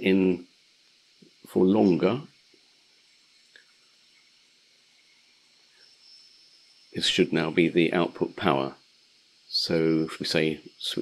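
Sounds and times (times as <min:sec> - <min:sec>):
faint high steady tone: 0:00.0 - 0:11.0.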